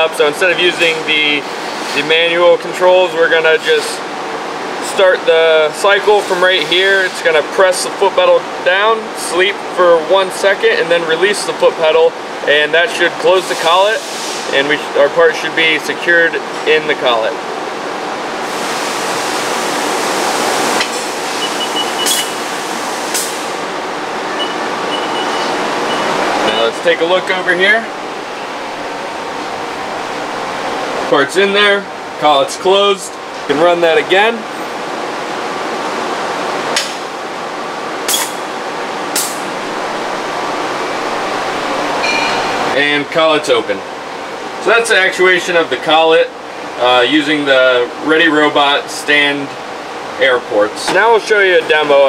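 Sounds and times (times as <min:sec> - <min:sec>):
workshop noise: 0:00.0 - 0:52.0
steady air hiss: 0:13.4 - 0:14.8
air cylinder bursts: 0:20.8 - 0:23.6, 0:38.1 - 0:38.5.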